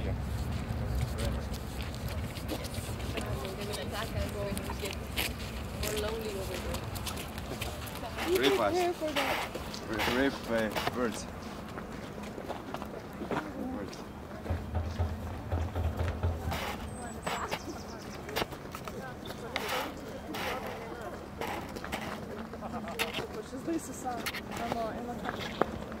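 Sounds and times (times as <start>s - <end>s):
faint talking voices: 0.0s - 11.4s, 16.2s - 26.0s.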